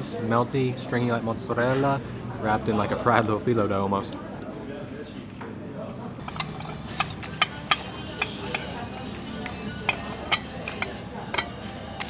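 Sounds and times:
murmur of room: 0:00.0 - 0:12.0
dishes and cutlery clinking: 0:06.2 - 0:12.0.

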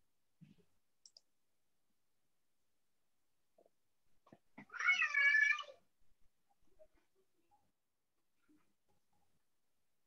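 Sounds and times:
faint clicks: 0:01.0 - 0:01.3.

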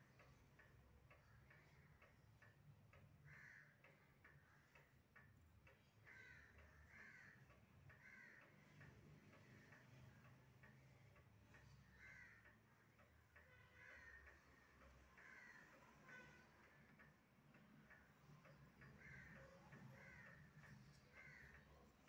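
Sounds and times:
faint regular ticking: 0:00.0 - 0:22.0.

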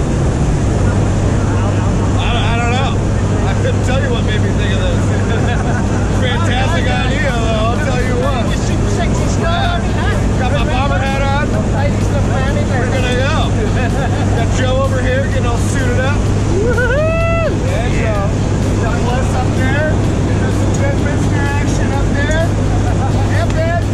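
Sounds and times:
plane engine and propeller drone: 0:00.0 - 0:23.9
voices talking: 0:00.5 - 0:23.9
loud long call: 0:16.4 - 0:18.3.

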